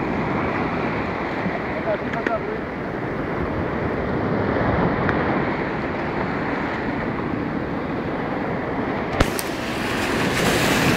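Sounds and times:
sea surf washing over beach: 0.0s - 10.9s
wind buffeting microphone: 0.0s - 10.9s.

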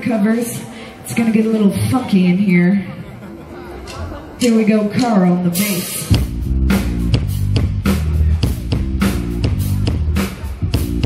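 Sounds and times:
drum kit beat: 4.4s - 11.0s
electric bass guitar line: 6.1s - 11.0s.

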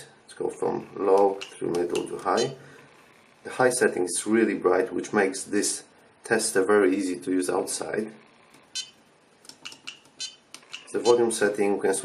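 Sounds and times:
button clicks: 8.8s - 11.2s.

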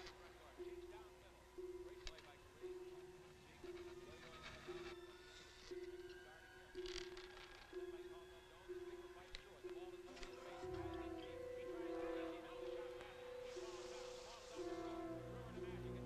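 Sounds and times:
faint higher sounds: 0.0s - 16.0s.

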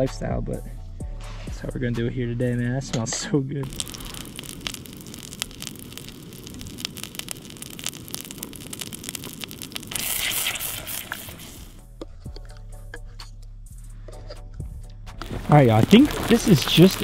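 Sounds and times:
background music: 0.0s - 3.6s, 11.7s - 17.0s
fish sizzling in butter: 3.6s - 11.8s, 15.2s - 17.0s.

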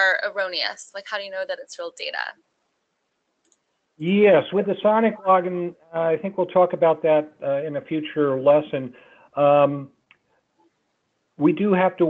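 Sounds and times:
person speaking: 0.0s - 2.3s, 4.0s - 9.8s, 11.4s - 12.0s.

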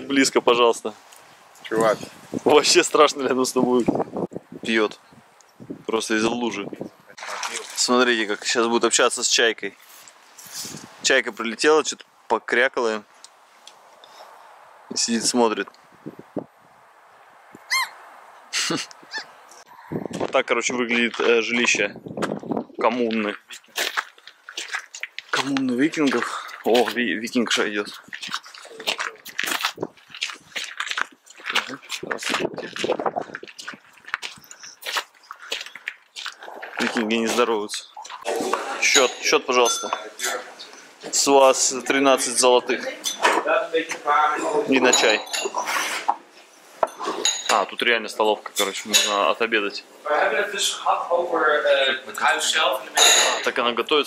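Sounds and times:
gull call: 17.6s - 18.0s.

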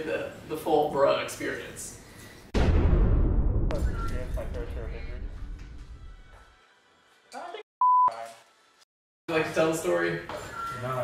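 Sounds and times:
censor bleep: 7.8s - 8.2s.

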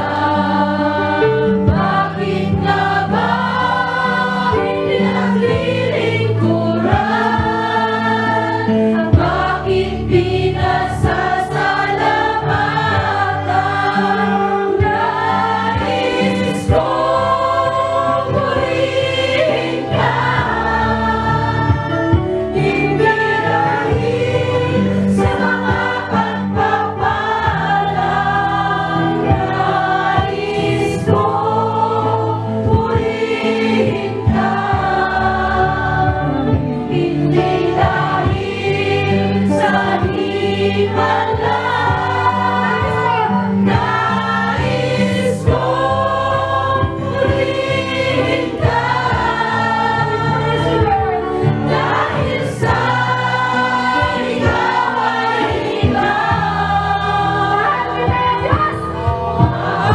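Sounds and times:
choir singing: 0.0s - 59.9s
instrumental backing: 0.0s - 59.9s.

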